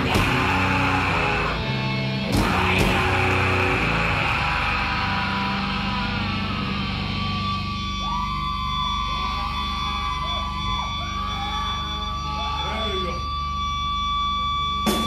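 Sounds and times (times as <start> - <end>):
high guitar feedback tone: 0.0 - 15.0.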